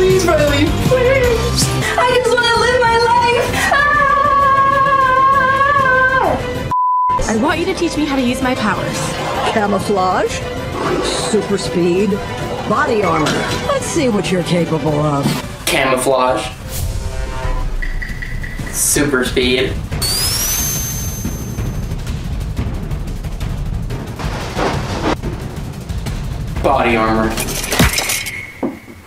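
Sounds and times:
music: 0:00.0 - 0:29.0
voices: 0:07.2 - 0:16.6
high rising whine: 0:16.6 - 0:23.4
short electronic beep: 0:20.0 - 0:21.8.

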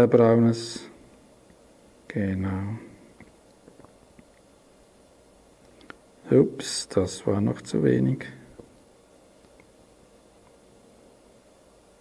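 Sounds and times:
faint clicks of tweezers and wire: 0:08.6 - 0:09.8.

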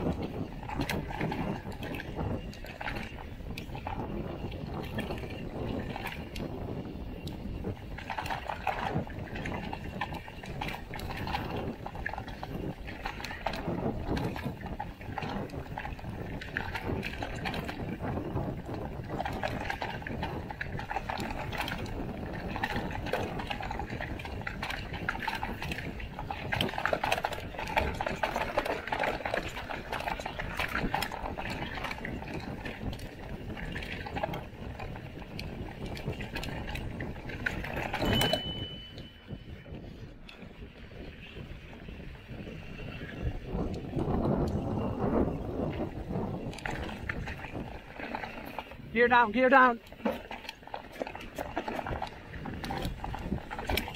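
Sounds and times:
bike frame rattling: 0:00.0 - 0:53.9
high steady tone: 0:38.0 - 0:39.5.

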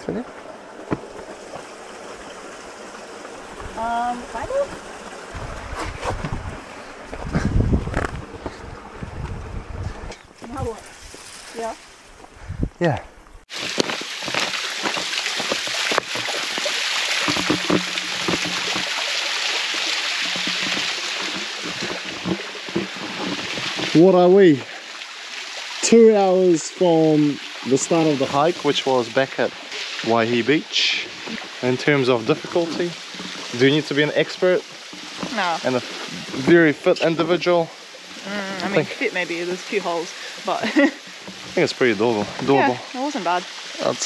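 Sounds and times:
stream running over rocks: 0:00.0 - 0:44.0
waterfall splashing into pool: 0:13.5 - 0:44.0.

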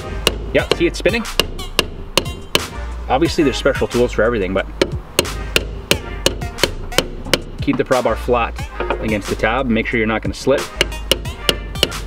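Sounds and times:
pry bar knocking on lock ring: 0:00.2 - 0:02.7, 0:04.8 - 0:07.8, 0:10.8 - 0:12.0.

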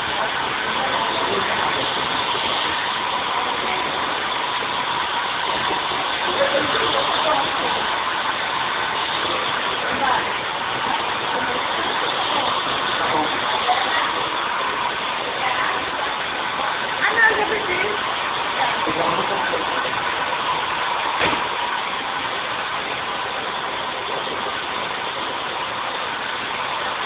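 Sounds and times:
hair dryer blowing: 0:00.0 - 0:27.0.

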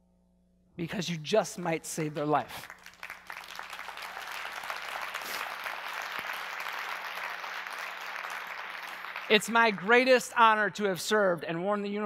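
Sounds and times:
audience applauding: 0:02.0 - 0:10.4.

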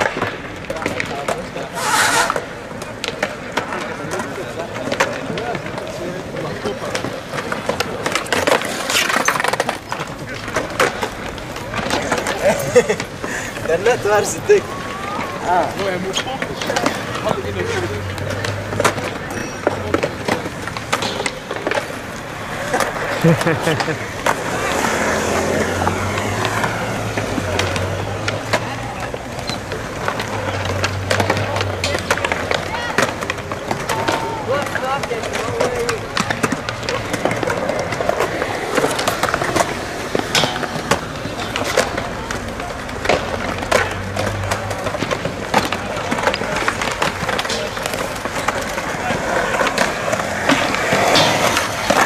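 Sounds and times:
skateboard clacking on ground: 0:00.0 - 0:52.0
skateboard wheels rolling on concrete: 0:00.0 - 0:52.0.

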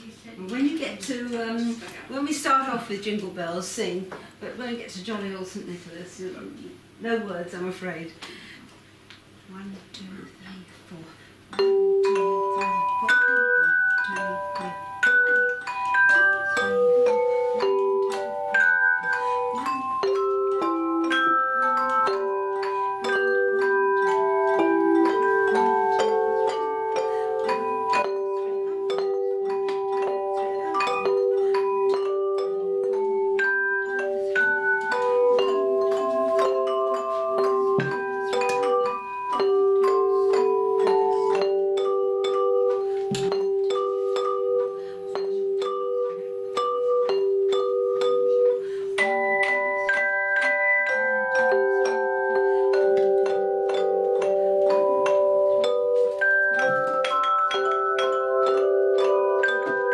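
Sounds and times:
bell plates ringing a melody: 0:11.5 - 0:59.9.

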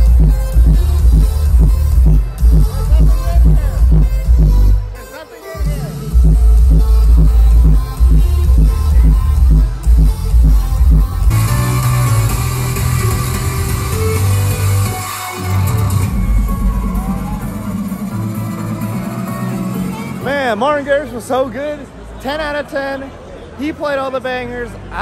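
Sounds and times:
electronic dance music: 0:00.0 - 0:21.2.

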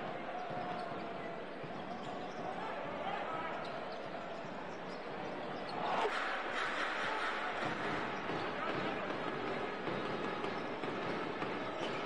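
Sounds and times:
crowd noise with voices: 0:00.0 - 0:12.0
basketball dribbling on court: 0:07.6 - 0:12.0.

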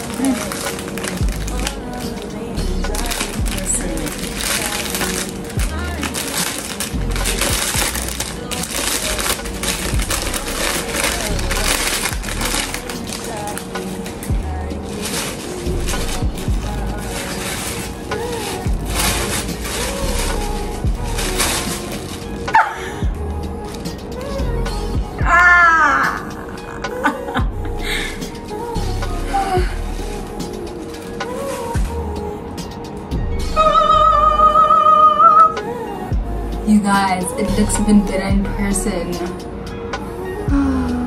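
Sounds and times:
plastic and paper wrapping crinkling: 0:00.0 - 0:24.9, 0:28.0 - 0:32.4
background music with deep beat: 0:00.0 - 0:34.7, 0:35.4 - 0:41.0.

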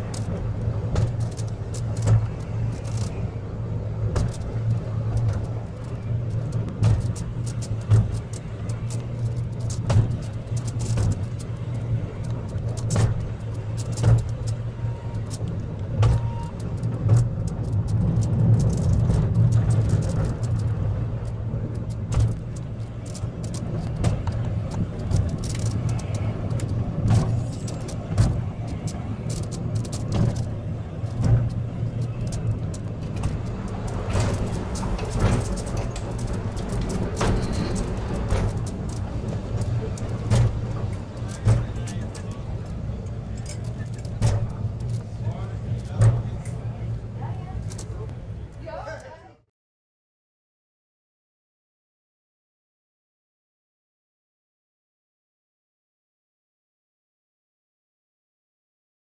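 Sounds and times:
wheels clacking on track: 0:00.0 - 0:49.1
funicular car rumbling: 0:00.0 - 0:49.4.

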